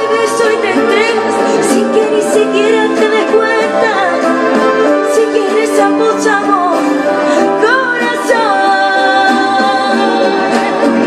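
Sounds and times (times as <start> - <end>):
backing music: 0.0 - 11.0
woman singing into a microphone: 0.0 - 11.0.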